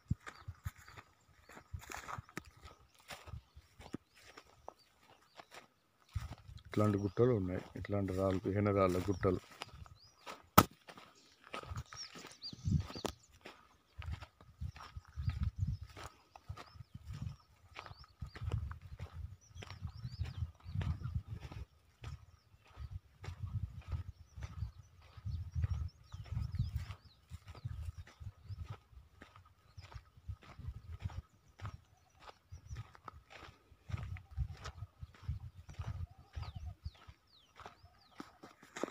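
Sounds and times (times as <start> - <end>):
footsteps crunching on dry grass: 0.0 - 38.9
low rumbling on microphone: 18.0 - 22.3, 22.9 - 28.8.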